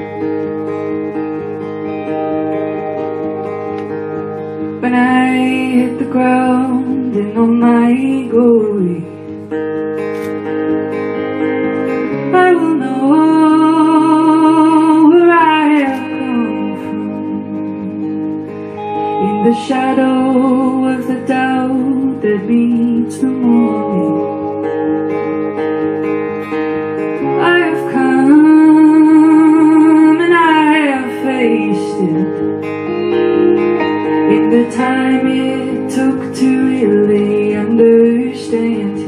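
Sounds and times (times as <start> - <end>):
acoustic guitar strumming chords: 0.0 - 39.0.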